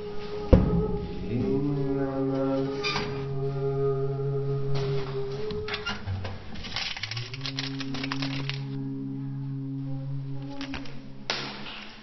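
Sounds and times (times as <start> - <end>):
plastic candy bag crinkling: 6.5 - 8.8.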